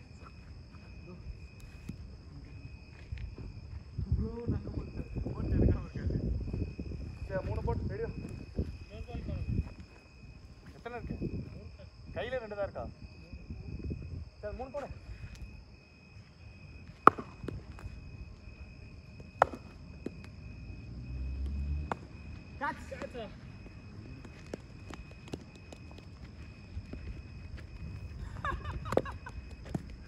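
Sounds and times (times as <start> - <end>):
cricket bat striking ball: 17.0 - 17.9, 19.2 - 20.4, 21.8 - 22.2.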